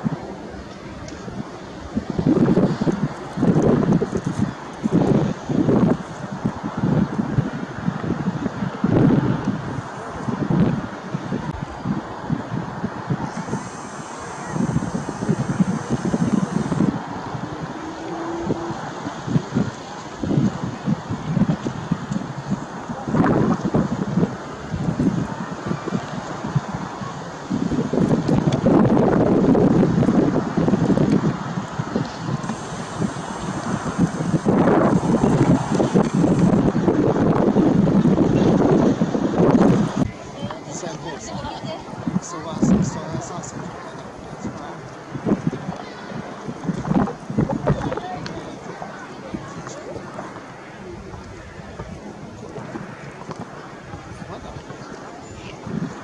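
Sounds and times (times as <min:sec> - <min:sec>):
gusty wind buffeting microphone: 0:00.0 - 0:56.0.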